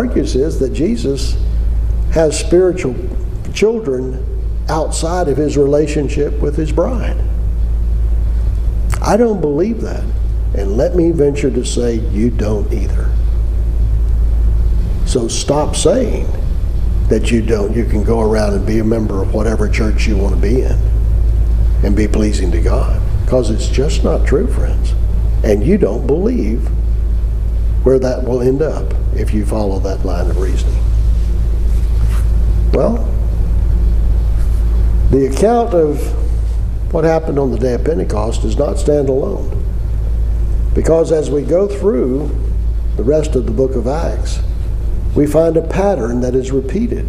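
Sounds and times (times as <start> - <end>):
steady low hum and rumble: 0.0 - 47.0.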